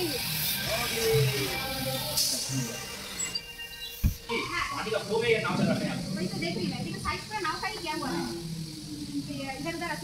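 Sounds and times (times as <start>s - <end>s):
people talking and exclaiming: 0.0s - 10.0s
steady hiss: 0.0s - 10.0s.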